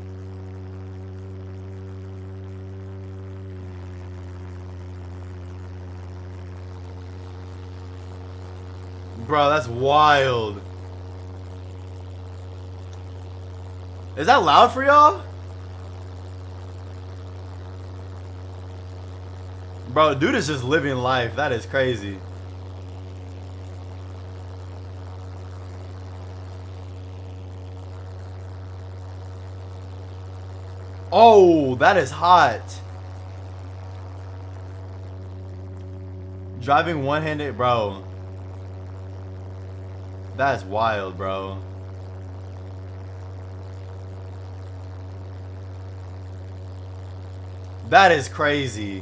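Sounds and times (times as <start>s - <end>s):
pulse jet engines droning: 0.0s - 49.0s
go-kart jet engines droning: 9.1s - 10.6s, 14.2s - 15.3s, 19.8s - 22.2s, 31.1s - 32.8s, 36.5s - 38.1s, 40.3s - 41.6s, 47.8s - 49.0s.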